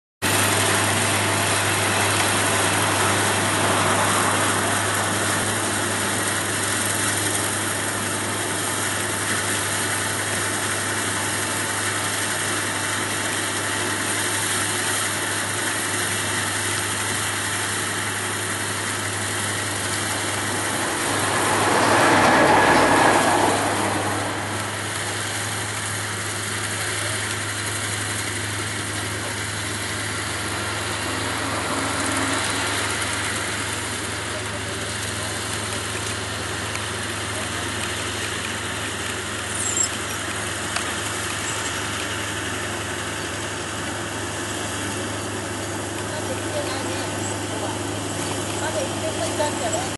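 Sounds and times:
combine harvester engine hum: 0.2s - 49.9s.

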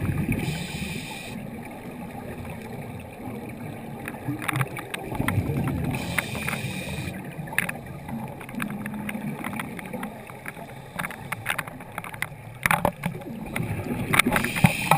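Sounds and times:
underwater bubbling: 0.0s - 14.9s
regulator breathing underwater: 0.3s - 1.5s, 5.8s - 7.2s, 14.2s - 14.9s.

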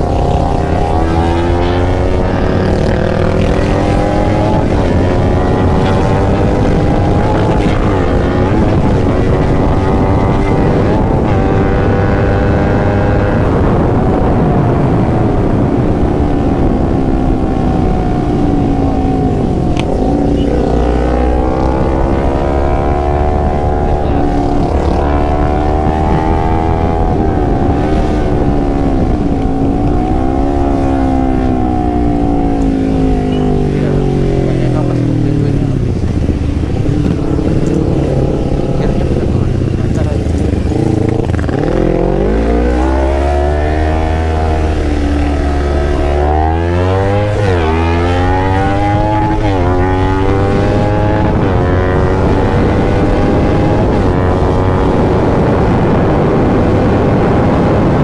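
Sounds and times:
motorcycle engine revving: 0.0s - 58.0s
wind rushing over microphone: 0.0s - 58.0s.

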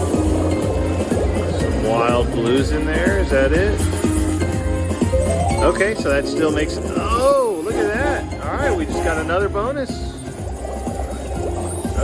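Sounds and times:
slot machine music and effects: 0.0s - 12.0s.

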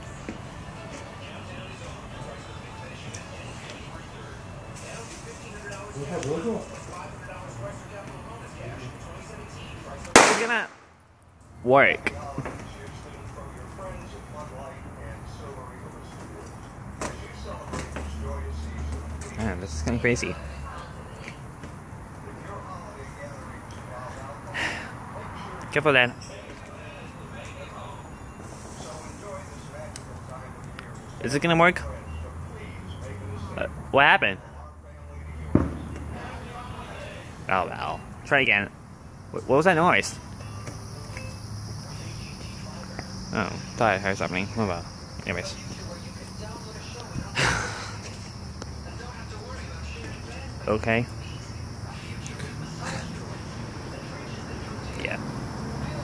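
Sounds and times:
low background voices: 0.0s - 10.6s, 11.5s - 56.0s
firecracker bang: 10.1s - 11.0s, 35.5s - 36.1s
short sharp pop: 10.2s - 10.8s.

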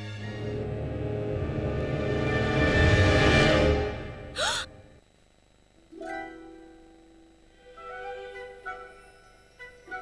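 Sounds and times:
girl gasping: 4.4s - 4.7s.

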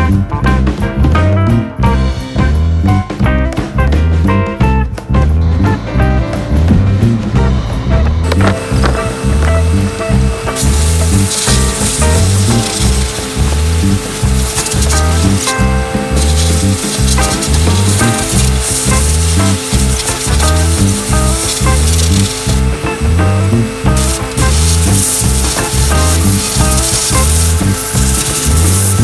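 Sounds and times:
background music with bass beat: 0.0s - 29.0s
sandblaster hissing on metal: 8.2s - 29.0s.

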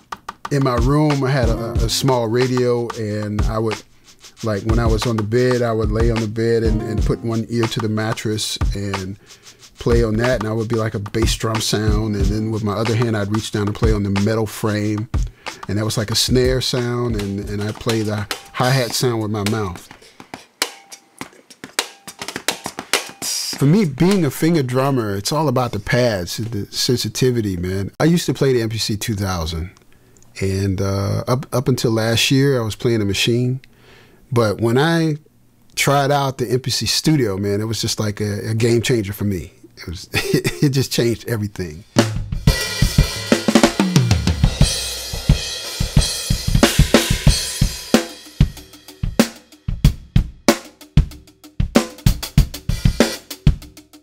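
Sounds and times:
finger-drummed drum kit hits: 0.0s - 9.2s, 9.8s - 24.3s, 42.0s - 54.0s
mouth hi-hat sounds: 0.0s - 27.6s, 39.4s - 54.0s.

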